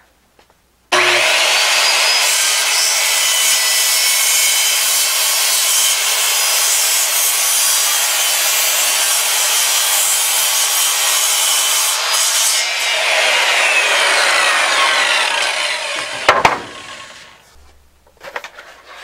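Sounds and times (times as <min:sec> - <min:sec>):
circular saw cutting wood: 0:00.9 - 0:17.4.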